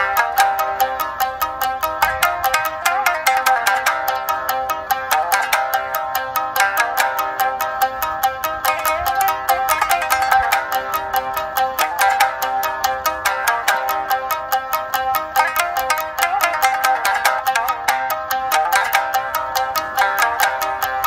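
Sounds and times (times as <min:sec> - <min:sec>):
shamisen strings plucked: 0:00.0 - 0:21.0.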